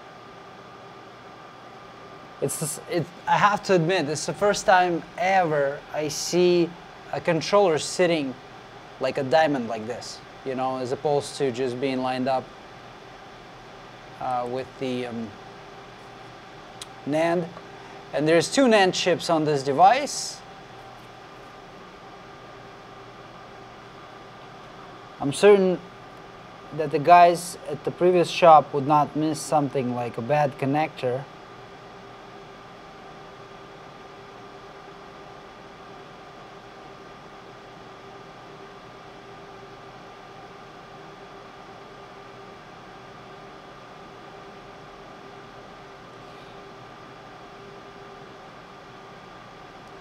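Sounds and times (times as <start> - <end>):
faint constant tones: 0.0 - 50.0
steady fan-like hiss: 0.0 - 50.0.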